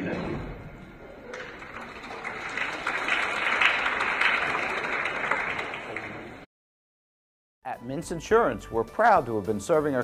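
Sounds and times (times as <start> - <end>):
audience applauding: 1.3 - 6.5.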